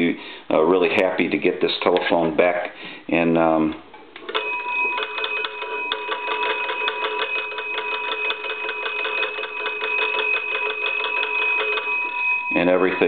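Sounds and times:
telephone bells ringing: 0:04.2 - 0:13.0.

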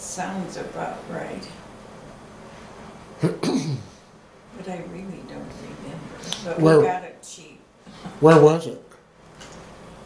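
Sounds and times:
woman clearing throat with cough: 0:03.2 - 0:03.9.

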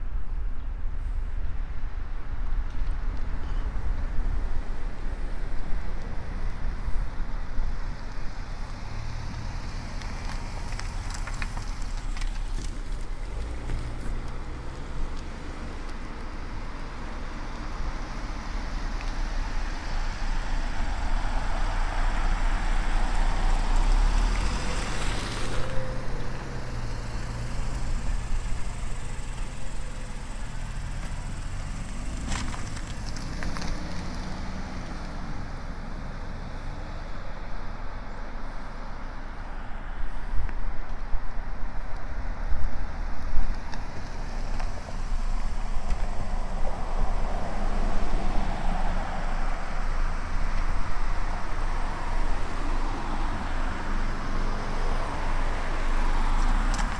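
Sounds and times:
cars driving slowly past: 0:00.2 - 0:56.9.

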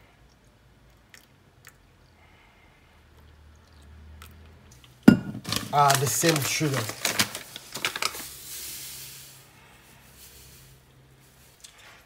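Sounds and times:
sugar pouring hiss: 0:05.5 - 0:12.0.

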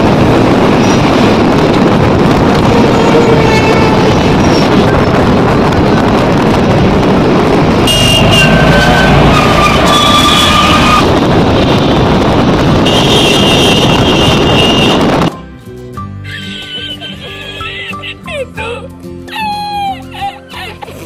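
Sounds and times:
road and wind noise in vehicle: 0:00.0 - 0:21.0
car horns: 0:07.8 - 0:11.2, 0:12.7 - 0:15.3.

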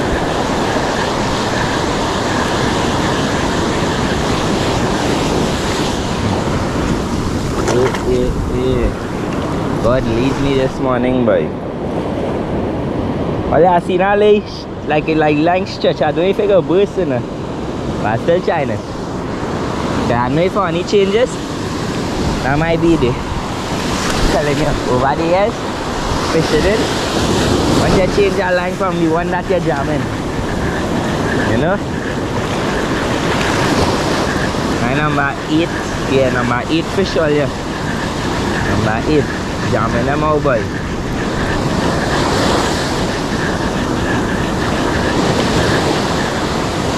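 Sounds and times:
surf washing on sand: 0:00.0 - 0:46.9
wind on microphone: 0:00.0 - 0:46.9
man talking: 0:07.7 - 0:09.0, 0:09.8 - 0:11.6, 0:13.5 - 0:17.3, 0:18.0 - 0:18.9, 0:20.1 - 0:21.4, 0:22.4 - 0:23.3, 0:24.2 - 0:25.6, 0:26.3 - 0:26.9, 0:27.8 - 0:30.1, 0:31.4 - 0:31.8, 0:34.8 - 0:37.6, 0:38.6 - 0:40.8.

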